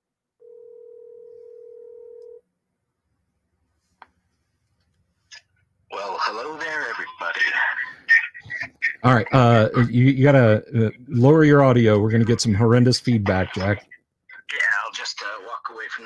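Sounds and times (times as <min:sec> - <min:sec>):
telephone ringback tone: 0:00.4 - 0:02.4
voice on phone: 0:05.9 - 0:11.1, 0:12.1 - 0:16.0.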